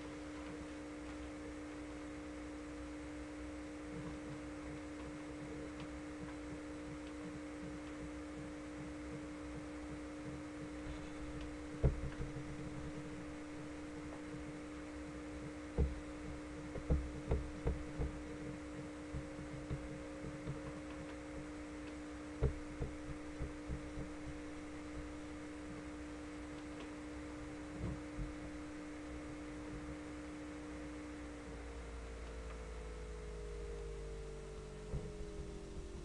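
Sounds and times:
background hiss: 0.0 - 36.0
low steady hum: 0.0 - 36.0
soft low thumps: 3.8 - 36.0.

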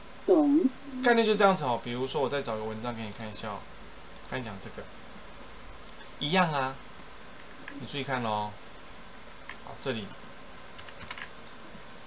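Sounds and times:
low steady hiss: 0.0 - 12.0
computer keyboard clicks: 10.8 - 11.6.

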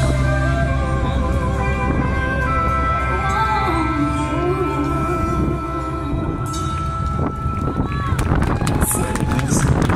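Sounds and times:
audience clapping: 6.7 - 9.9.

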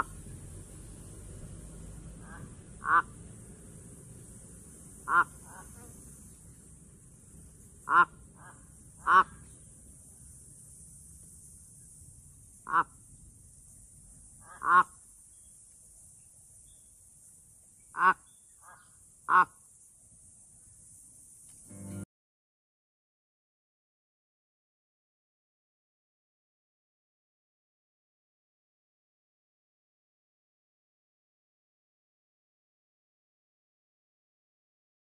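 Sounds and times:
crow cawing: 2.2 - 3.1, 5.1 - 5.6, 7.9 - 9.4, 14.4 - 14.9.

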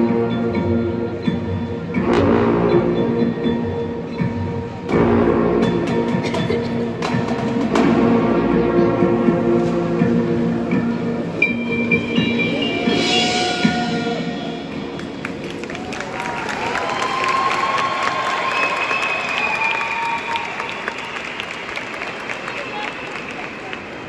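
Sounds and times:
brass and percussion chord: 1.9 - 15.8
audience applause and cheering: 13.6 - 24.0.

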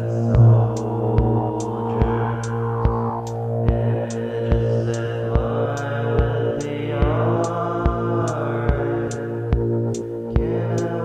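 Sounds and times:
low thumps: 0.0 - 6.3
synth drone: 0.0 - 11.0.

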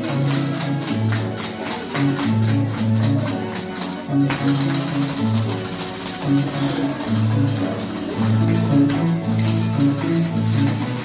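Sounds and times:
plucked harp melody: 0.0 - 11.0.

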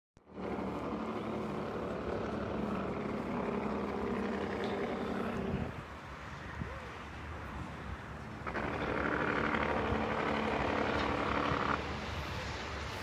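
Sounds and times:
engine drone: 0.2 - 13.0.

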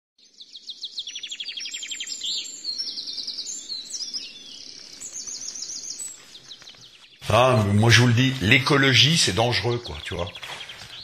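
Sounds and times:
small birds singing: 0.2 - 11.0.

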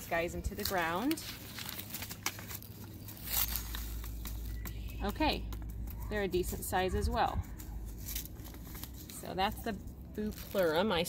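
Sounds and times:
paper packet rustling: 0.0 - 4.9, 5.5 - 11.0
steady low rumble: 0.0 - 11.0.

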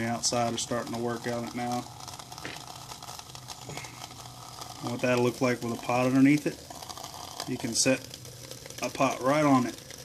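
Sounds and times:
alcohol stove sizzling hiss: 0.0 - 10.0
low steady hum: 0.0 - 10.0.

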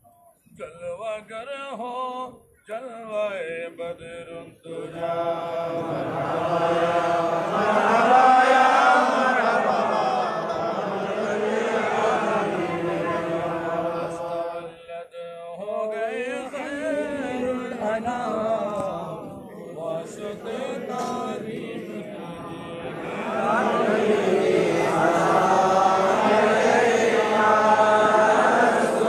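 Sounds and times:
men chanting in unison: 3.0 - 29.0.

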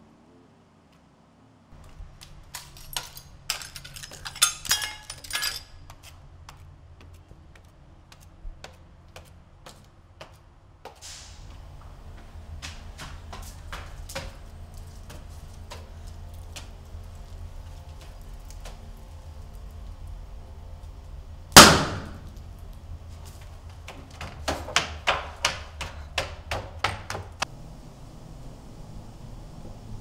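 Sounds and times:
low steady rumble: 11.4 - 24.2, 27.3 - 30.0
low steady hum: 11.4 - 24.5, 27.3 - 30.0
loud bang: 21.6 - 22.2.

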